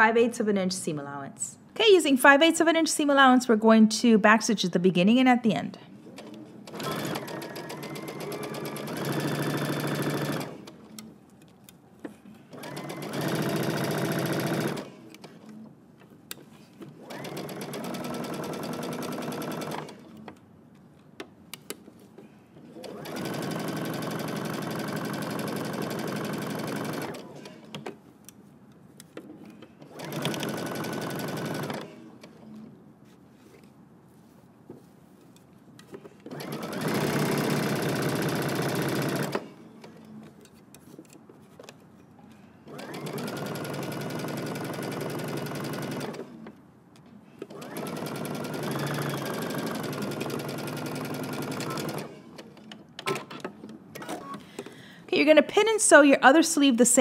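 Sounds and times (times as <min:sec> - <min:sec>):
electric sewing machine stitching: 0:06.7 - 0:10.8, 0:12.5 - 0:15.4, 0:17.0 - 0:20.2, 0:22.7 - 0:27.7, 0:29.9 - 0:32.0, 0:36.3 - 0:39.6, 0:42.7 - 0:46.4, 0:47.5 - 0:52.4.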